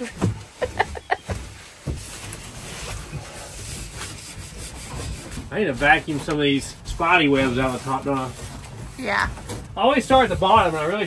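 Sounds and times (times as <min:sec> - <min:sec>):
brush scrubbing upholstery: 0:00.7 - 0:09.2.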